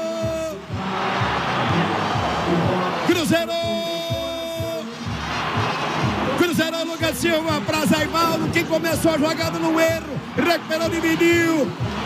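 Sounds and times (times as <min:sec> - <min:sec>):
excited male commentator: 0:00.0 - 0:00.6, 0:03.0 - 0:04.9, 0:06.4 - 0:11.8
stadium crowd roaring: 0:00.0 - 0:12.0.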